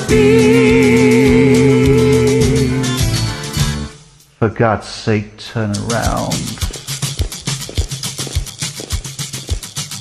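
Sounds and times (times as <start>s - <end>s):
person singing with vibrato: 0.0s - 3.4s
country backing track: 0.0s - 10.0s.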